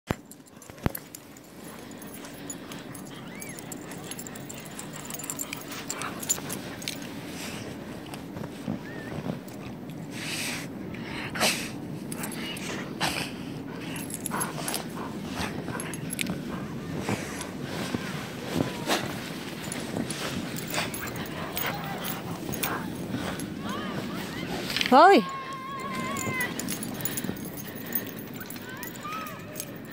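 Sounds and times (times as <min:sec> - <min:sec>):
dog scuffling in snow: 0:14.4 - 0:25.0
dog whimpering: 0:20.6 - 0:23.0.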